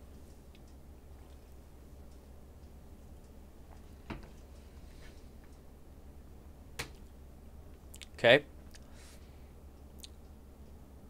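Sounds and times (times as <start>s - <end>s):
faint low hum: 0.0s - 11.0s
soft clicks: 0.2s - 4.6s.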